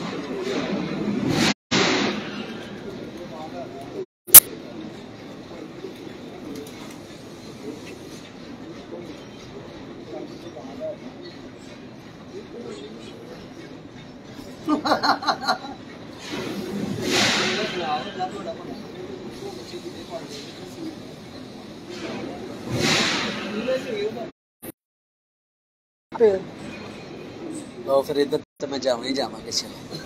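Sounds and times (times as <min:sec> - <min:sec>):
faint voices: 0:02.7 - 0:14.7, 0:17.6 - 0:22.6.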